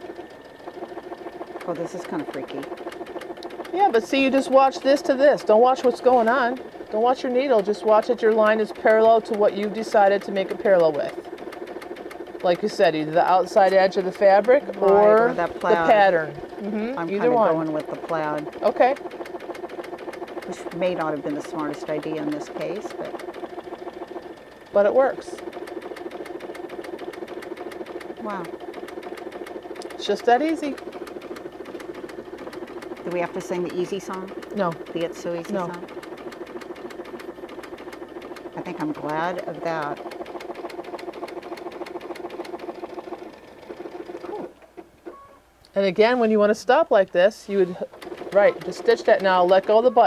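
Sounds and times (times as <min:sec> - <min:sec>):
needle ticking: 0:00.0 - 0:50.0
sewing machine motor hum: 0:00.0 - 0:50.0.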